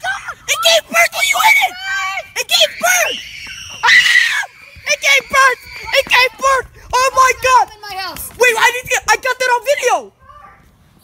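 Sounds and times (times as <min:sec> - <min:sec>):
loud harsh scream: 0:00.0 - 0:06.6.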